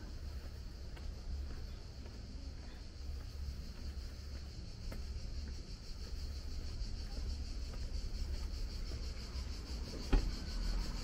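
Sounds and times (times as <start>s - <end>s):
footsteps on stone paving: 0.0s - 11.0s.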